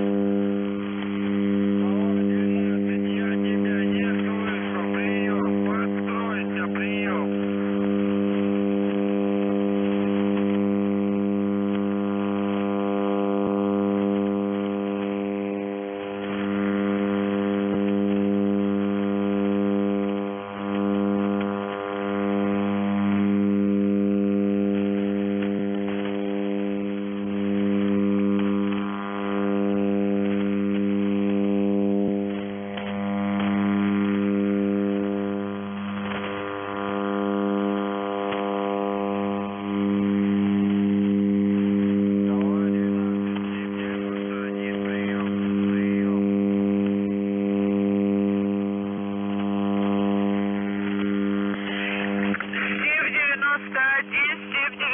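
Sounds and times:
faint radio hiss: 0.0 - 54.9
radio interference buzzing hum: 0.0 - 54.9.

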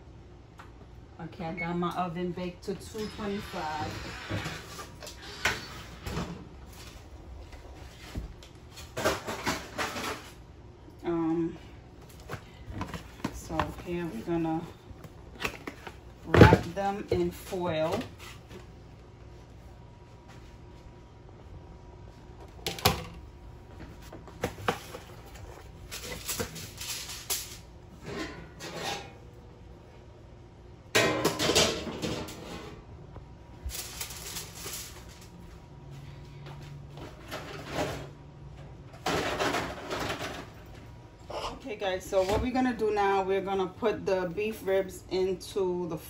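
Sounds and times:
aluminium foil crinkling: 25.8 - 27.7, 33.6 - 35.3.

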